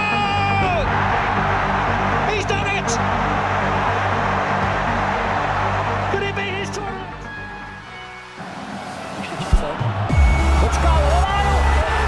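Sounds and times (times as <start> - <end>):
low background music: 0.0 - 12.0
stadium crowd cheering: 0.0 - 12.0.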